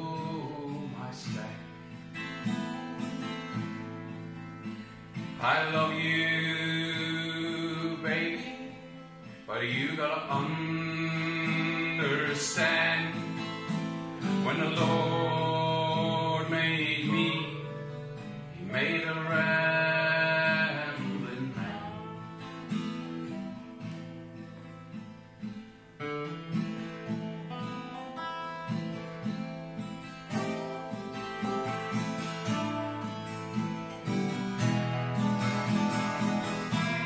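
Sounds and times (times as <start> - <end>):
person singing: 0.0 - 1.7, 5.4 - 13.5, 14.2 - 17.9, 18.5 - 22.7, 35.7 - 37.0
strummed acoustic guitar: 0.0 - 37.0.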